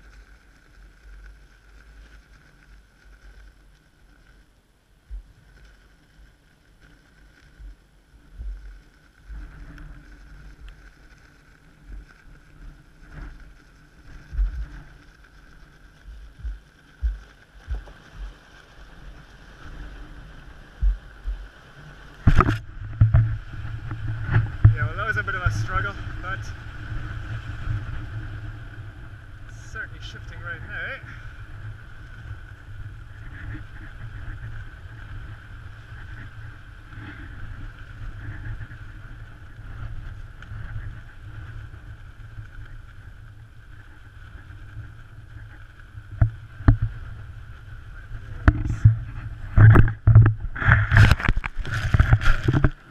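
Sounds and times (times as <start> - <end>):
faint steady hum: 0.0 - 52.9
kite rig clicks: 0.0 - 52.9
low rumble: 0.0 - 52.9
wind gusting on microphone: 8.2 - 52.9.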